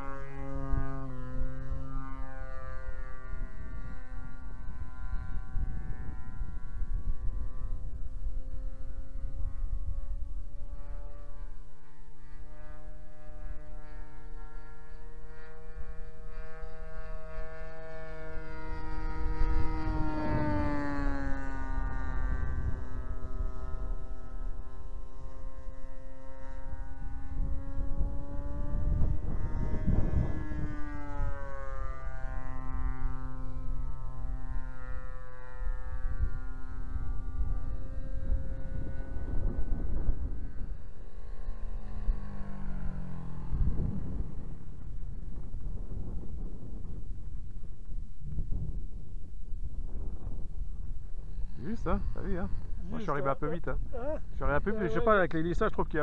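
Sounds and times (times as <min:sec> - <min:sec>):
model plane engine droning: 0:00.0 - 0:56.0.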